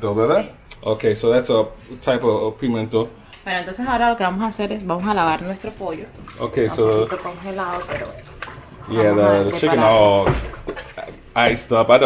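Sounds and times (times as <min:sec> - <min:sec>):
person talking: 0:06.4 - 0:07.6, 0:08.9 - 0:10.3.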